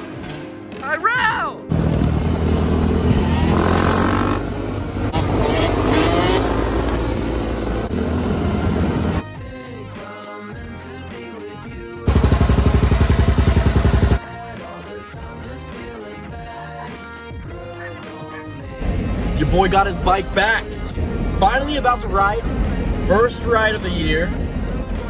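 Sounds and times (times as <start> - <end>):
background music: 0.0 - 25.0
dirt bike engine revving: 1.7 - 9.2, 12.1 - 14.2
loud fast pulsing: 12.1 - 14.2.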